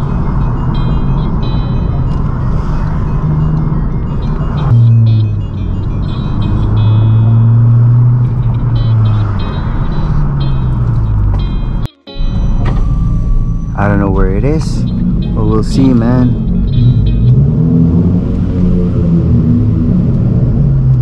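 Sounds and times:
car engine droning: 0.0s - 21.0s
music with short high notes: 3.5s - 17.8s.

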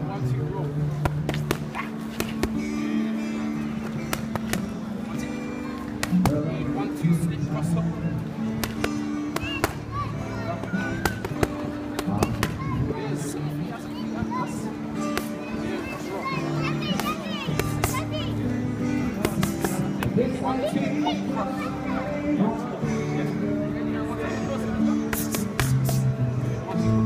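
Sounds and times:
boxing gloves slapping mitts: 1.0s - 2.7s, 3.8s - 4.7s, 8.6s - 9.8s, 19.2s - 19.9s, 25.1s - 26.1s.

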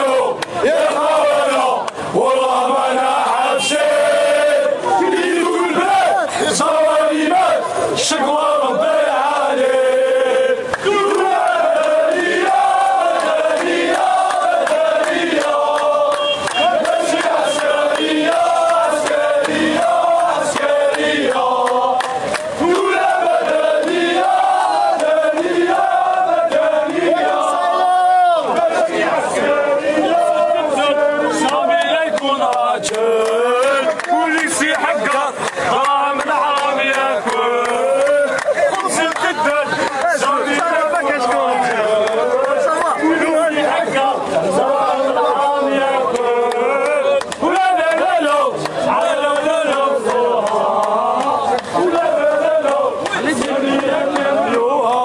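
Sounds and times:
crowd chanting in unison: 0.0s - 55.0s.

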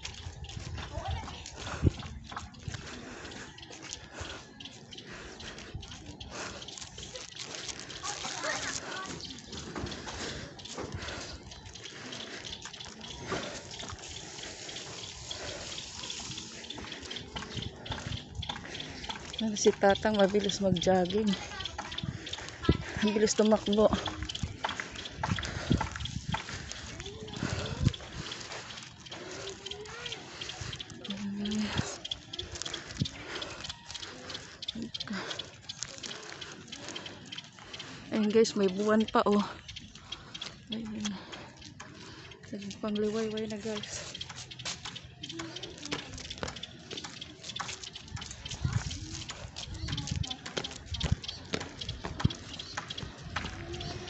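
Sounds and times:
faint distant voices: 0.0s - 54.0s
footsteps: 0.0s - 54.0s.

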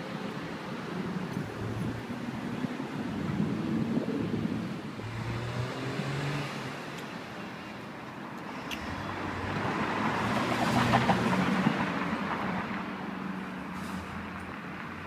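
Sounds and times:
vehicle engines humming: 0.0s - 15.0s
vehicle approaching: 0.9s - 7.8s, 8.4s - 15.0s.

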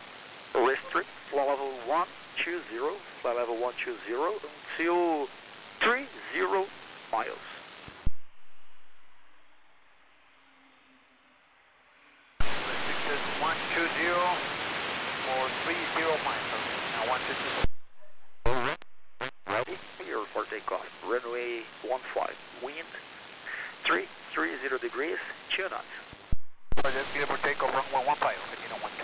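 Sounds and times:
radio static hiss: 0.0s - 9.8s, 12.4s - 29.0s
radio voices: 0.5s - 7.7s, 12.4s - 14.6s, 15.2s - 17.7s, 18.4s - 29.0s.

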